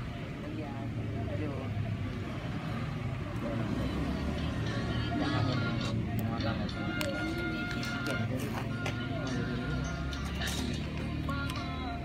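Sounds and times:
background conversation: 0:00.0 - 0:12.0.

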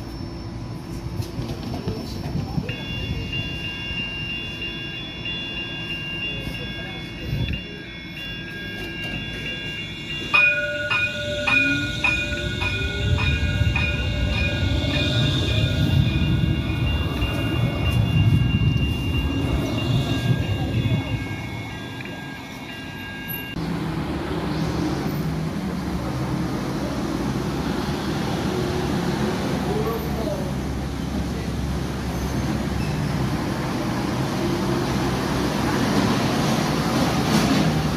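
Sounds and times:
street and rail traffic rumble: 0:00.0 - 0:37.9
tram electric drive whine: 0:00.0 - 0:37.9.

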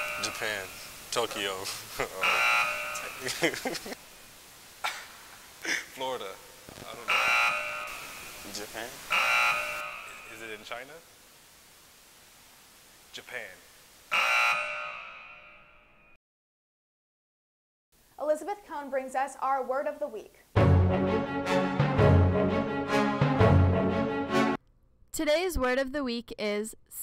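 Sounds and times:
harsh buzzer: 0:00.0 - 0:00.9, 0:02.2 - 0:03.4, 0:07.1 - 0:08.3, 0:09.1 - 0:10.4, 0:14.1 - 0:16.1.

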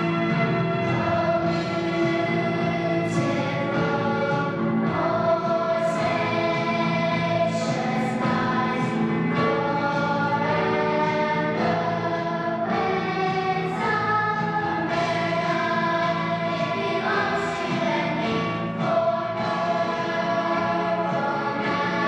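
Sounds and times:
girls choir singing: 0:00.0 - 0:22.0.

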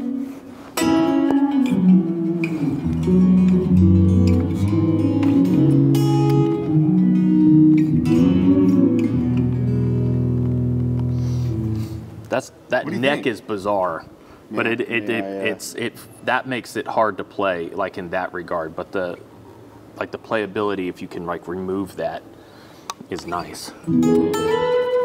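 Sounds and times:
electric guitar played: 0:00.0 - 0:12.3, 0:23.8 - 0:25.0.

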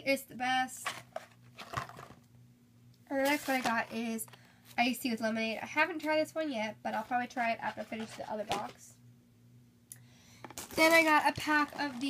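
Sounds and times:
low steady hum: 0:00.0 - 0:12.0
cardboard boxes rustling in plastic bag: 0:00.8 - 0:02.2, 0:03.2 - 0:04.3, 0:10.6 - 0:12.0.

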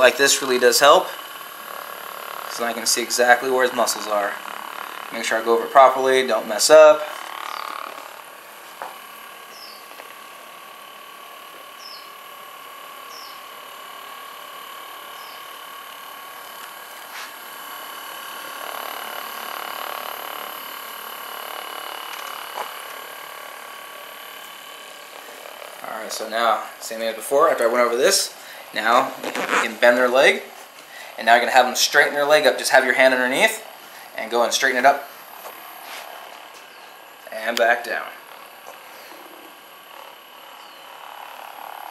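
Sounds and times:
massager motor humming: 0:00.0 - 0:41.9.

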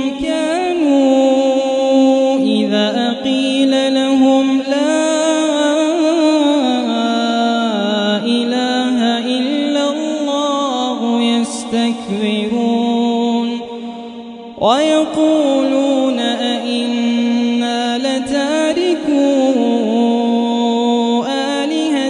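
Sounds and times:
man chanting recitation: 0:00.0 - 0:22.0.

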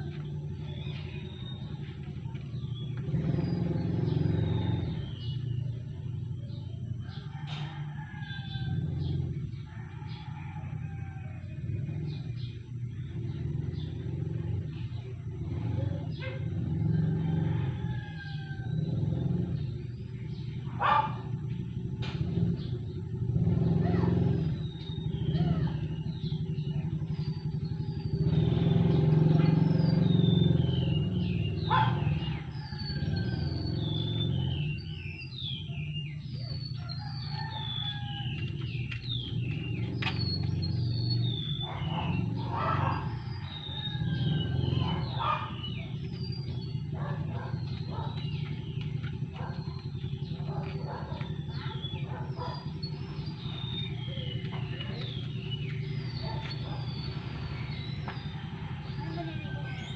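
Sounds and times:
birds chirping: 0:00.0 - 0:59.9
steady low rumble: 0:34.7 - 0:59.4.

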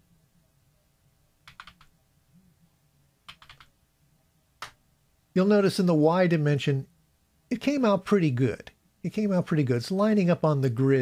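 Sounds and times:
faint keyboard typing: 0:01.4 - 0:02.0, 0:03.2 - 0:03.8.

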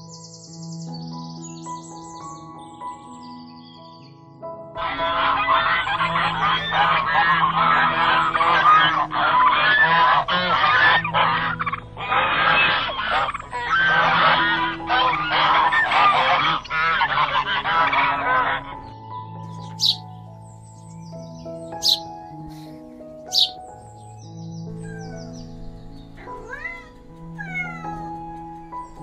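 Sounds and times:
soft background music: 0:00.0 - 0:29.0
geese honking: 0:04.8 - 0:20.3, 0:21.6 - 0:23.8, 0:24.8 - 0:29.0.

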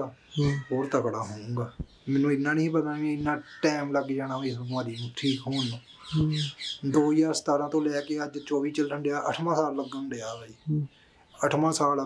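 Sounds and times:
man's voice: 0:00.0 - 0:05.8, 0:06.8 - 0:10.5
bird chirping: 0:00.0 - 0:12.0.

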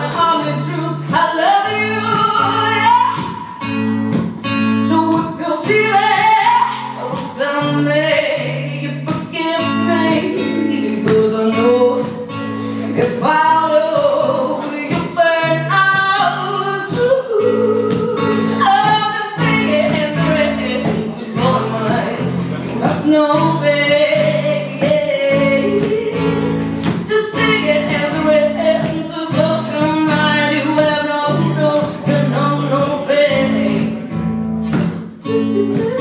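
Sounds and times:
acoustic guitar chords: 0:00.0 - 0:36.0
woman singing: 0:00.0 - 0:36.0.

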